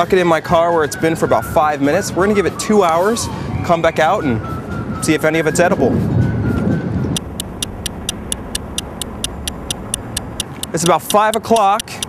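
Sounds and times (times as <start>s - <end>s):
low steady rumble: 7.2s - 12.0s
rapid clock-like ticking: 7.2s - 12.0s.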